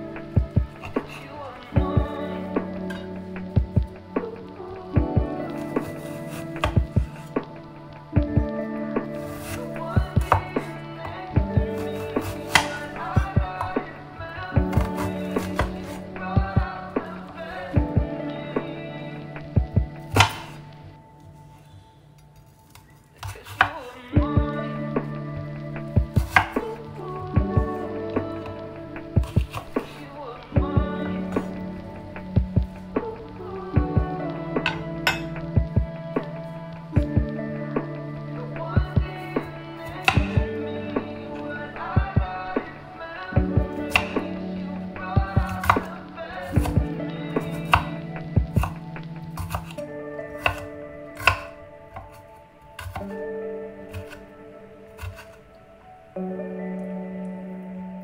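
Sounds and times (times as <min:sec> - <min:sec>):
soft background music: 0:00.0 - 0:58.0
knife striking cutting board: 0:20.1 - 0:20.6, 0:50.4 - 0:52.1.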